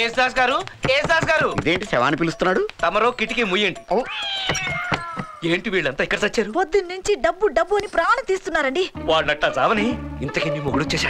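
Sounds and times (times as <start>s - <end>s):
high-pitched cat-like cry: 4.0s - 5.5s.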